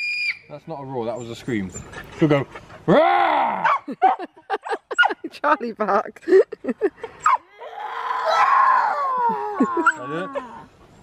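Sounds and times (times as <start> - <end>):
girl screaming: 7.5 - 10.3.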